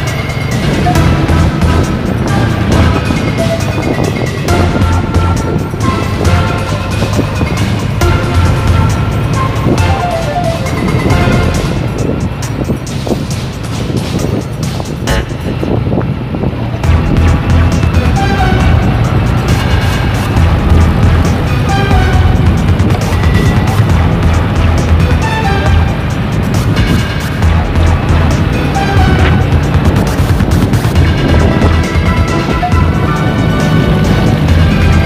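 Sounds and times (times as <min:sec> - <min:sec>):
background music: 0:00.0 - 0:35.0
car engines running: 0:00.0 - 0:35.0
road noise: 0:00.0 - 0:35.0.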